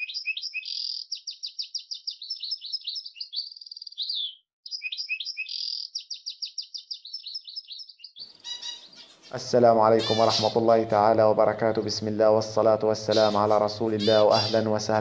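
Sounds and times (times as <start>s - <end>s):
canary singing trills: 0.0s - 12.1s, 12.7s - 15.0s.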